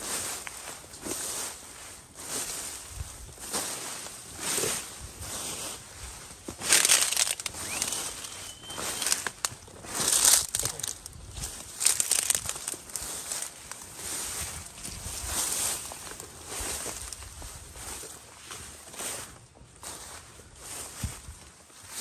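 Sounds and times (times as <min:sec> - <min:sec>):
footsteps through rustling grass: 0:00.0 - 0:22.0.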